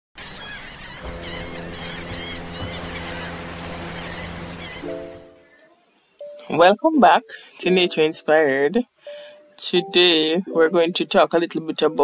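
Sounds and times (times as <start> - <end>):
birds chirping: 0.2 - 12.0
held musical tones: 1.0 - 12.0.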